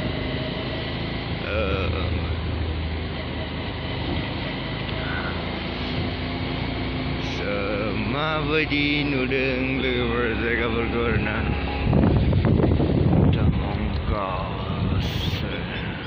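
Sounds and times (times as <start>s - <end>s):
motorcycle engine hum: 0.0s - 16.0s
road noise: 0.0s - 16.0s
wind noise: 11.1s - 16.0s
person speaking: 13.3s - 16.0s.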